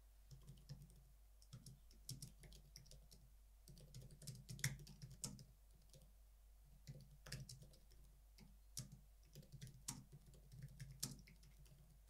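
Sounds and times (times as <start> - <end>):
computer keyboard typing: 0.3 - 6.1, 6.8 - 12.0.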